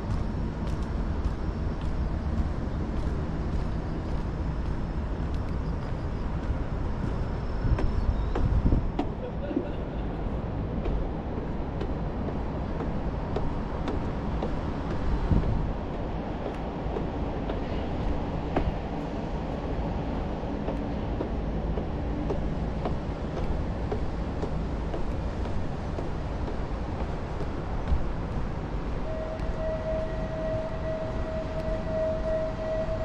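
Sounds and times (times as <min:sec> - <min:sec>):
low rumble of city vehicles: 0:00.0 - 0:33.0.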